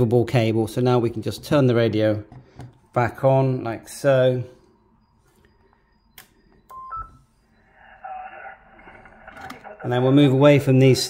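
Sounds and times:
faint radio stations: 0.4s - 11.0s
short beeps: 4.5s - 7.7s
radio receiver hiss: 7.5s - 10.6s.

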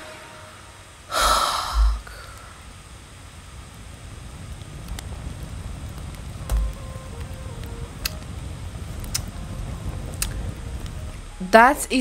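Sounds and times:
fire crackles: 0.0s - 12.0s
fire rumbling: 0.1s - 12.0s
dull thump: 6.4s - 6.8s.

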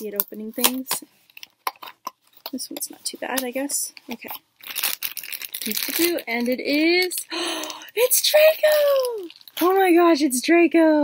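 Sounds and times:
packaging rustling and tearing: 0.0s - 10.0s.

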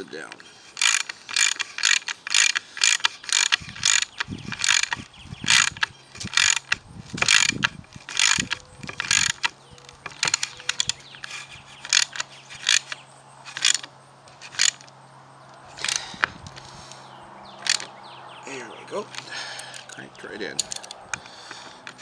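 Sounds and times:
ratchet wrench clicking: 0.3s - 14.9s, 15.6s - 17.0s, 17.6s - 17.9s, 19.1s - 22.0s.

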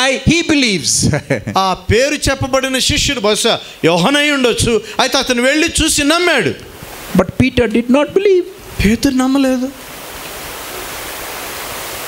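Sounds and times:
steady hiss: 0.1s - 12.0s.

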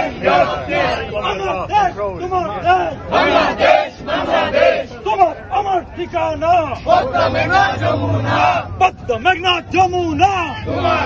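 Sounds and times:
crowd chanting slogans: 0.0s - 11.0s.

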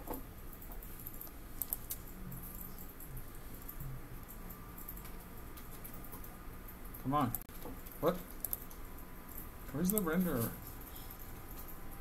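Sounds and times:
mouse and keyboard clicks: 0.0s - 2.1s, 7.3s - 8.8s
low steady hum: 0.0s - 12.0s.

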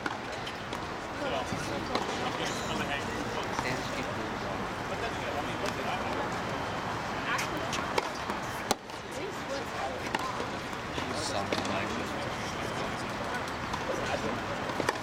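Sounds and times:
tennis balls struck and bouncing: 0.0s - 2.8s, 5.5s - 6.3s, 7.4s - 15.0s
murmur of voices: 0.0s - 15.0s.

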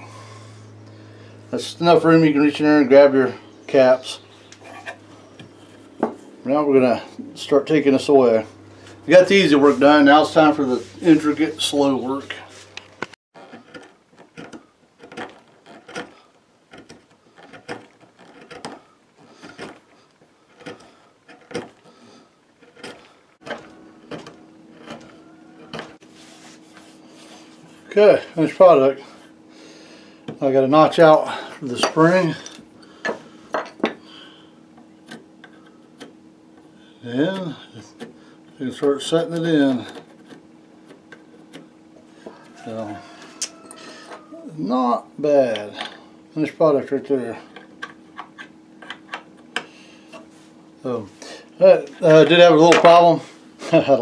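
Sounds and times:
faint steady hum: 0.0s - 54.0s
gouge scraping wood: 1.6s - 7.6s, 8.3s - 44.3s.

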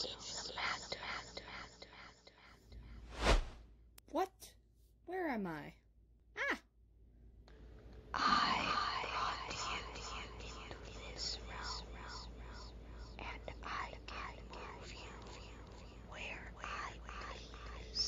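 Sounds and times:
person whispering: 0.0s - 2.6s, 8.2s - 18.0s.

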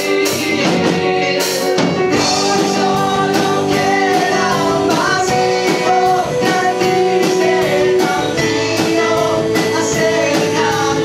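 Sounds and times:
drum kit: 0.0s - 11.0s
keyboard: 0.0s - 11.0s
person singing: 0.0s - 11.0s.

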